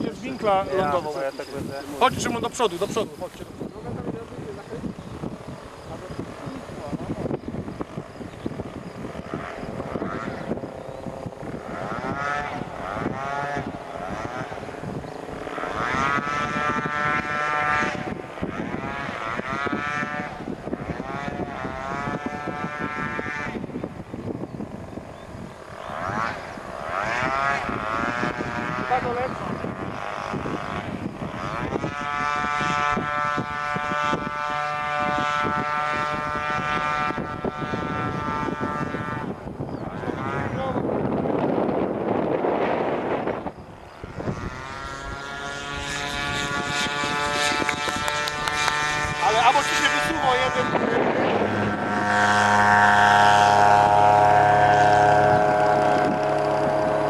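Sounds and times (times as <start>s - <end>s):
small aircraft engine droning: 0.0s - 57.0s.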